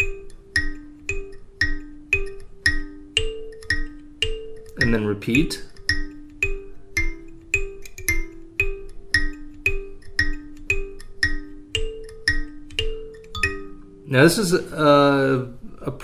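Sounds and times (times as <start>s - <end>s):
kalimba plucked riff: 0.0s - 15.1s.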